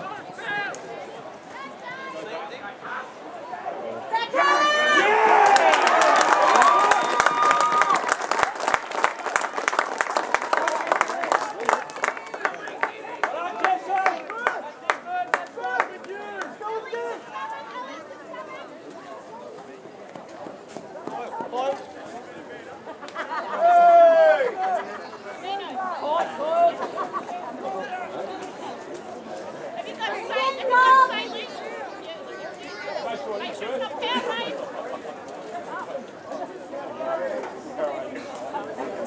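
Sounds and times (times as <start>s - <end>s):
crowd chatter: 0.0s - 39.0s
crowd cheering and shouting: 3.3s - 8.7s, 23.4s - 28.0s, 29.8s - 34.7s
crowd clapping: 5.3s - 16.6s.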